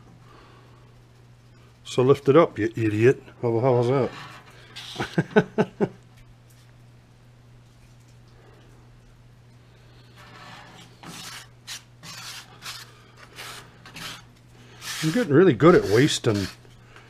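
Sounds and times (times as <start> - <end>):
plastic spoon scraping metal pot: 10.1 - 16.7.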